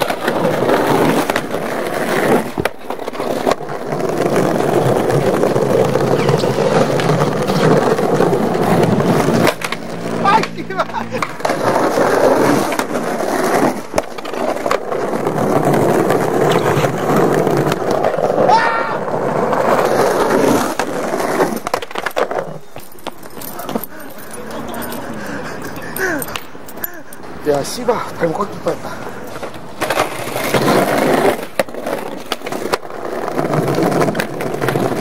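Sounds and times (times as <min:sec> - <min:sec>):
skateboard clacks: 0:00.0 - 0:27.4, 0:28.3 - 0:35.0
skateboard wheels rolling on brick: 0:00.0 - 0:35.0.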